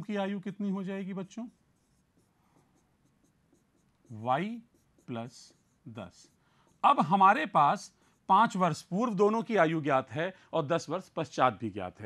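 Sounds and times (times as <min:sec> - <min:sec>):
stylus writing on tablet: 0:00.0 - 0:09.7.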